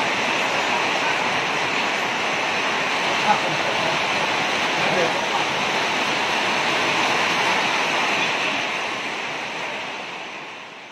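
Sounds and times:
rain falling: 0.0s - 10.9s.

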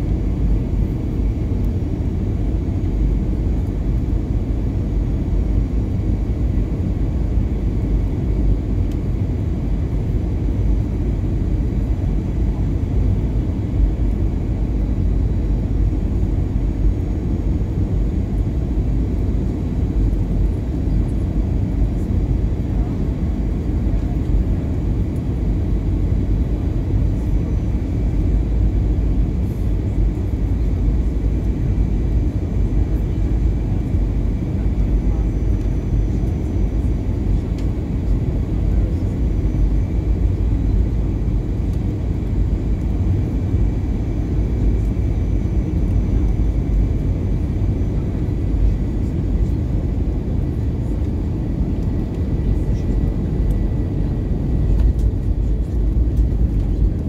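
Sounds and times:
jet engines rumbling: 0.0s - 57.0s.

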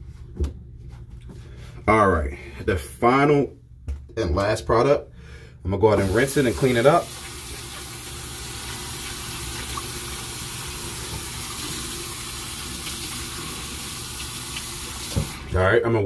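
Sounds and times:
faucet running into basin: 5.9s - 15.5s.

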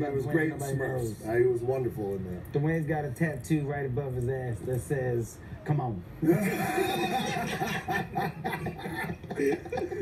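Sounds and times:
men laughing: 6.2s - 10.0s.

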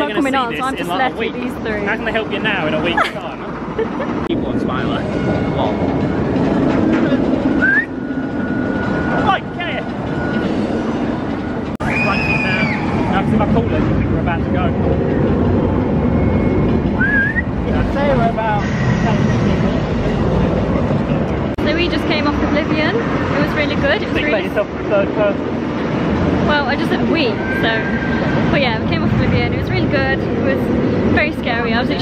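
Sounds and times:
roller coaster rumbling on track: 0.0s - 32.0s
high gliding cries: 7.4s - 13.4s, 26.5s - 30.2s.

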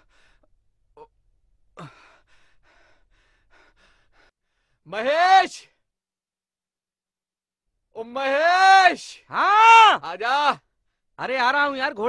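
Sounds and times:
man breathing with effort: 0.0s - 4.8s.

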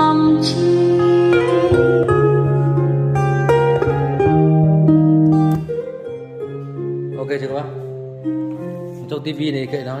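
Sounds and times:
plucked-string ballad melody over speakers: 0.0s - 10.0s.

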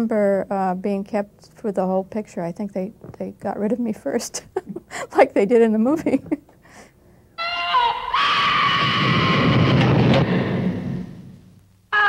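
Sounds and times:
woman screaming: 7.4s - 9.8s
low rumble: 9.0s - 11.6s.

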